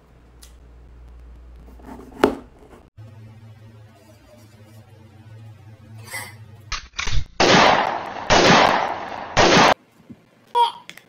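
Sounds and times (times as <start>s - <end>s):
steady low hum: 0.0s - 9.8s.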